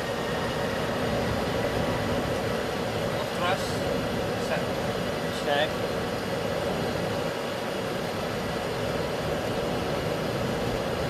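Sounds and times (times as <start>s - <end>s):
jet engines at takeoff thrust: 0.0s - 11.0s
wheels rolling on runway: 0.0s - 11.0s.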